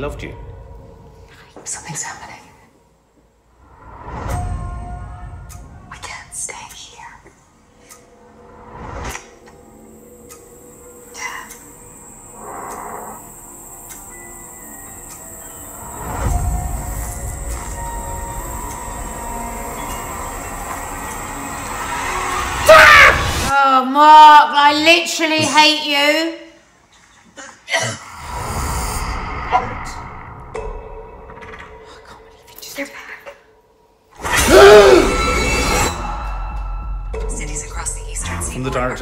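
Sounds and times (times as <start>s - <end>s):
person whispering: 5.9s - 7.4s
high sustained tone: 8.1s - 23.5s.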